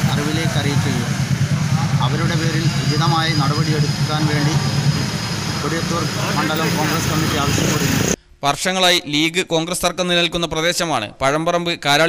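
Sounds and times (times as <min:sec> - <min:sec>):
steady low rumble: 0:00.0 - 0:08.2
man speaking: 0:01.8 - 0:04.8, 0:05.6 - 0:12.0.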